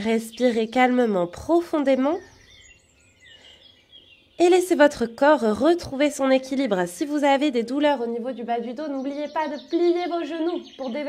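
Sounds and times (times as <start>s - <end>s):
woman speaking: 0.0s - 2.3s, 4.4s - 11.0s
faint birds chirping: 0.0s - 11.0s.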